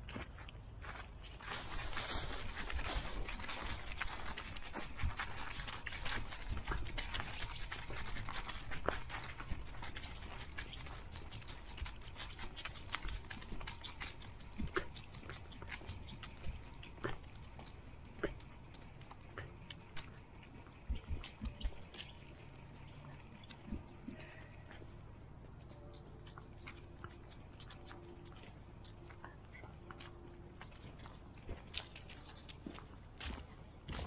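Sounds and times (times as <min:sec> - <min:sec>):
dry leaves crackling under paws: 0:01.2 - 0:34.0.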